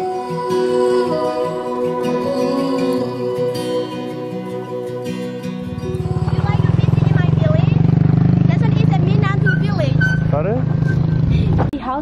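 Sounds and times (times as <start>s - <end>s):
motorcycle engine idling: 5.7s - 11.6s
people talking: 6.2s - 7.8s, 8.4s - 10.6s, 11.7s - 12.0s.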